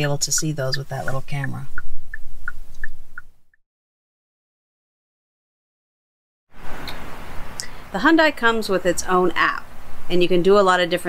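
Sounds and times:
low road rumble: 0.0s - 3.4s
turn signal ticking: 0.0s - 3.4s.

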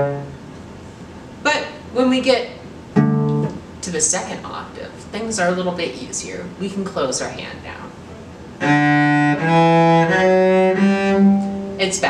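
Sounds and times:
cello bowed notes: 0.0s - 0.4s, 8.6s - 12.0s.

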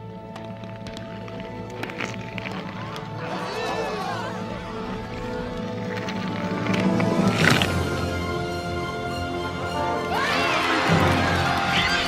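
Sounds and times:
sustained orchestral chords: 3.1s - 12.0s.

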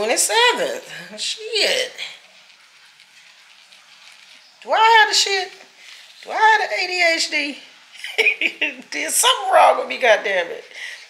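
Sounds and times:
pen scratching on eggshell: 1.6s - 6.3s.

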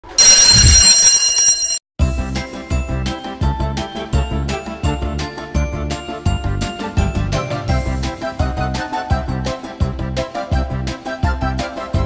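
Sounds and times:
electric bell ringing: 0.0s - 1.8s.

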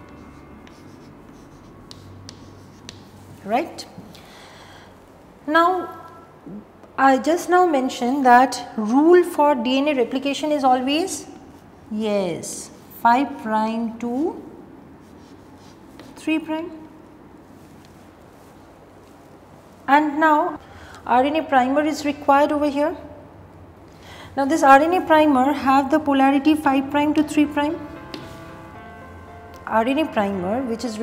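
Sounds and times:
chalk tapping on board: 0.0s - 3.3s, 15.2s - 16.2s, 28.0s - 28.5s
chalk scratching on chalkboard: 0.0s - 3.4s, 15.0s - 16.2s.

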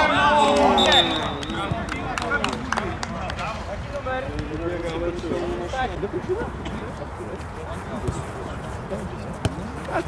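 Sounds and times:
people shouting outdoors: 0.0s - 1.3s.

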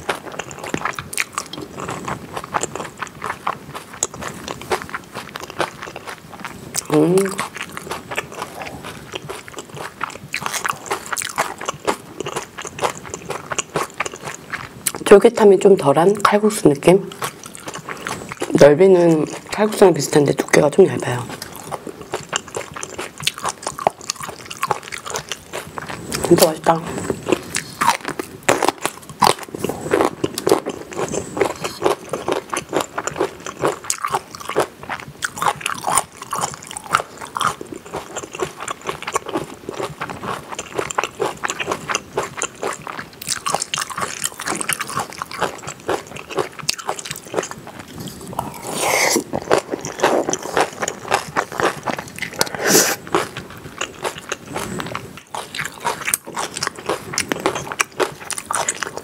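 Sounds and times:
crunchy bites and chewing: 0.0s - 15.0s, 21.3s - 59.0s.

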